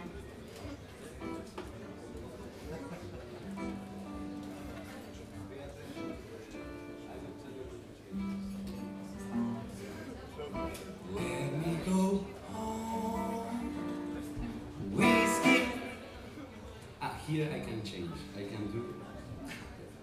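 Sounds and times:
live blues band with guitars: 0.7 - 16.4.

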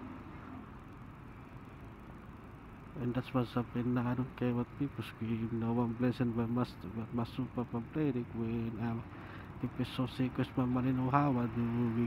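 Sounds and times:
motorcycle engine and road noise: 0.0 - 12.0.

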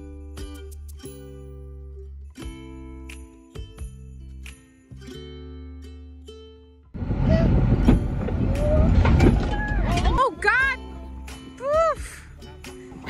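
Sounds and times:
plucked bell-like music: 0.0 - 6.8
pickup truck engine rumbling: 7.0 - 11.3.

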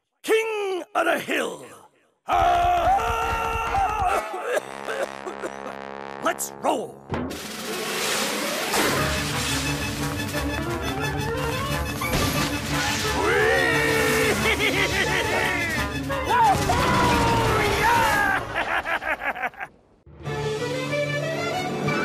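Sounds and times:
character yelling and wailing: 2.3 - 4.5, 13.2 - 18.6
crash sound effect: 7.1 - 10.1
cartoon orchestral music: 8.8 - 18.2.

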